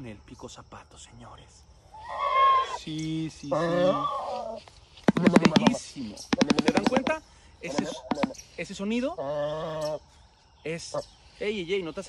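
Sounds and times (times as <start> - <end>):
bird bill clattering: 5.0 - 8.5.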